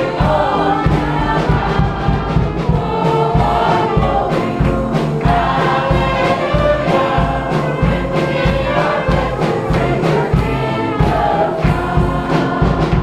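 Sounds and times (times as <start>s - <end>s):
choir singing gospel song: 0.0s - 13.0s
instrumental backing: 0.0s - 13.0s
steady bass beat: 0.0s - 13.0s.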